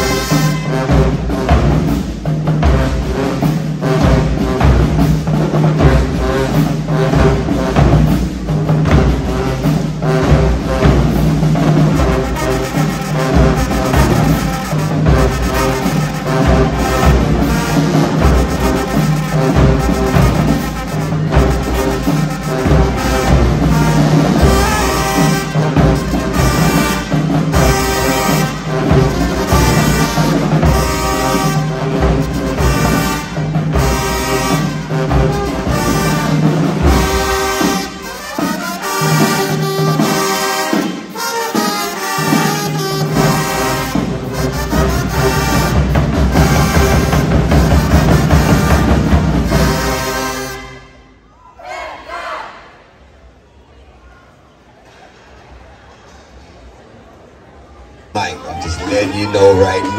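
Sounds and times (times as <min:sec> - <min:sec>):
drumline beat: 0:00.0 - 0:50.6, 0:58.2 - 0:59.9
marching band brass: 0:00.0 - 0:52.8, 0:58.2 - 0:59.9.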